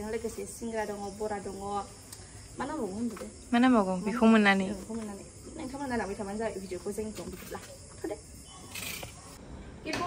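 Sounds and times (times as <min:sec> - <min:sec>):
woman talking: 0:00.0 - 0:02.0, 0:02.6 - 0:08.4.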